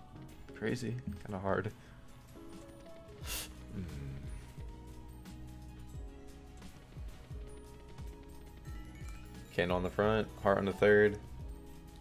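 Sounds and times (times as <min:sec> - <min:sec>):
slot game background music: 0:00.0 - 0:12.0.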